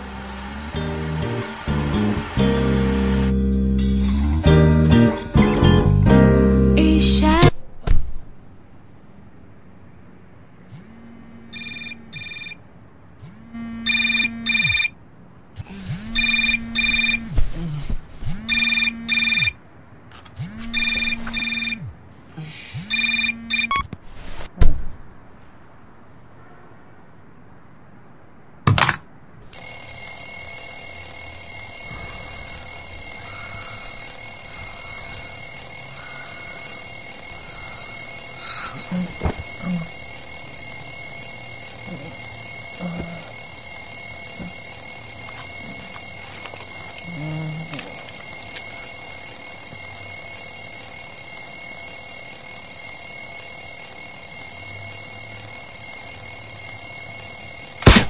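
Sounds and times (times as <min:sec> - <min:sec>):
alarm clock bells ringing: 0:29.5 - 0:58.0.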